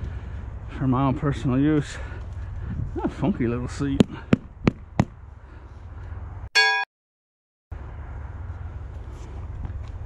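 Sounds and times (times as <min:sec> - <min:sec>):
low outdoor rumble: 0:00.0 - 0:06.5
bright bell-like ding: 0:06.6 - 0:06.9.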